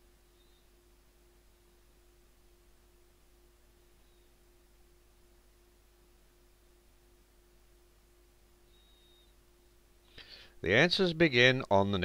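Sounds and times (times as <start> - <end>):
faint recording hiss: 0.0 - 12.0
faint steady hum: 0.0 - 12.0
brief faint high tone: 8.7 - 9.4.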